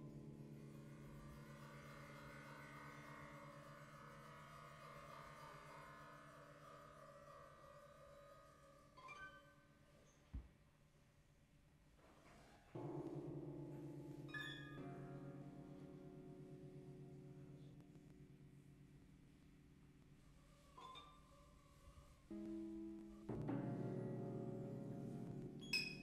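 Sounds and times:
bowed guitar drones: 0.0 - 9.0.

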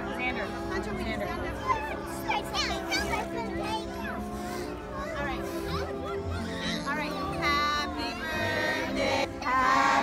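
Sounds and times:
background music: 0.0 - 10.0
children talking and shouting: 0.0 - 10.0.

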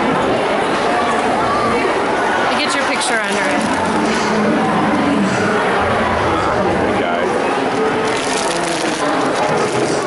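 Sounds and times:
hubbub of visitors talking: 0.0 - 10.0.

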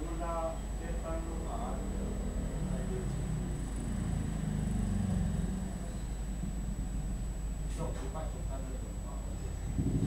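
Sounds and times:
vehicle passing by: 1.5 - 6.8, 9.7 - 10.0.

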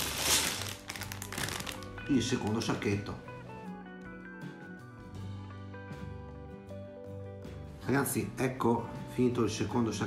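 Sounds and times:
plastic bag crinkling: 0.0 - 2.3
background music: 0.0 - 10.0.

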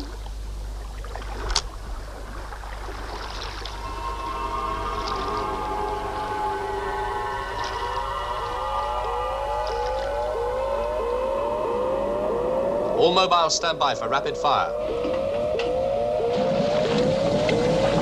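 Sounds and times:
eerie electronic held tones: 3.6 - 18.0
short rising electronic glide: 3.8 - 18.0.

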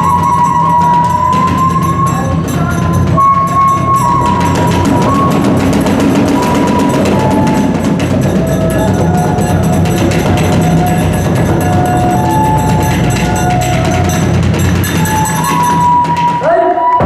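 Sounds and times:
small hand cymbals: 0.0 - 16.5
fast barrel drum beating: 0.0 - 16.6
bamboo flute high notes: 0.0 - 17.0.

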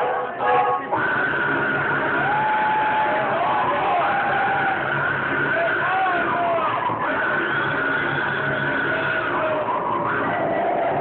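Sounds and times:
steady high tone: 0.0 - 11.0
low pulsing: 0.7 - 11.0.

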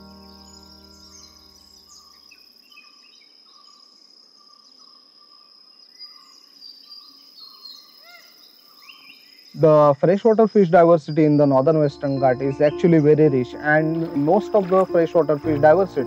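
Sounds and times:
low music chord: 0.0 - 2.0, 11.8 - 16.0
bird chirps: 0.0 - 16.0.

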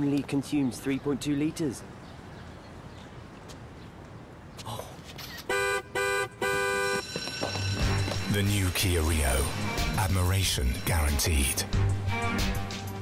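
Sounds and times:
car horn honking: 5.5 - 7.2.

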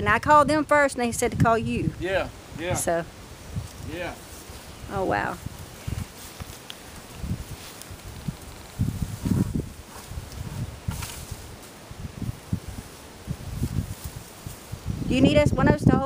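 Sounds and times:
leafy branches rustling: 1.0 - 16.0.

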